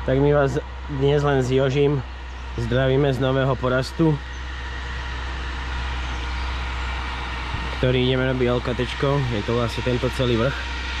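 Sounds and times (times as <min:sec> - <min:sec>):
steady low rumble: 0:00.0 - 0:11.0
man's voice: 0:02.6 - 0:04.2, 0:07.8 - 0:10.6.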